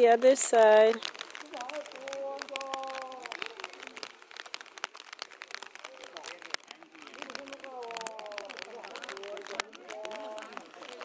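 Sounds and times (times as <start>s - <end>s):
faint voices talking: 0.0s - 11.0s
light crackles and taps: 0.0s - 11.0s.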